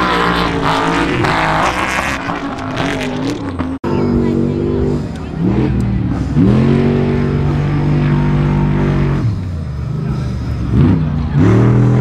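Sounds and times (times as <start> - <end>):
truck engine revving: 0.0 - 12.0.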